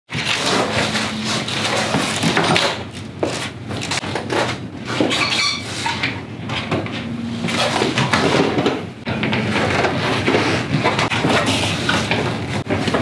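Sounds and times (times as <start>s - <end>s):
objects knocking and clattering: 0.1s - 13.0s.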